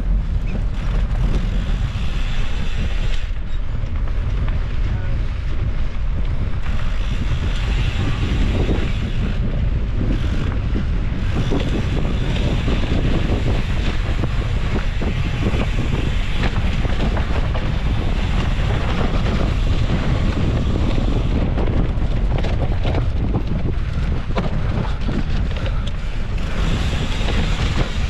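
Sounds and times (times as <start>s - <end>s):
bike rattling over bumps: 0.0s - 28.0s
wind on camera microphone: 0.0s - 28.0s.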